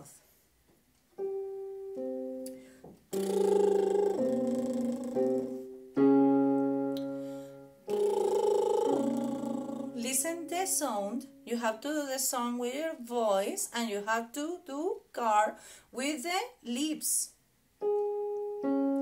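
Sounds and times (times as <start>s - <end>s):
woman doing lip trills: 2.4s - 5.7s, 7.8s - 11.0s
electronic keyboard notes and chords: 17.8s - 19.0s.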